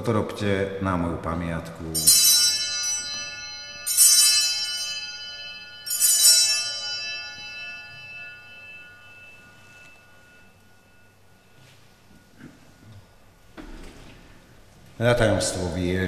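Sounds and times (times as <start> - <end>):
altar bell ringing: 1.9 - 15.8.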